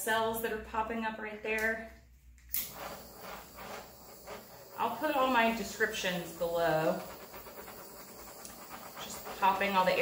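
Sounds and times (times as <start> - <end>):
torch flame hissing: 2.6 - 10.0.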